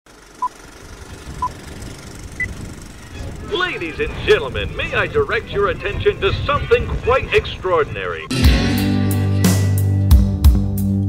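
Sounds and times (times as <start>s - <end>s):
steady low rumble: 0.2s - 8.3s.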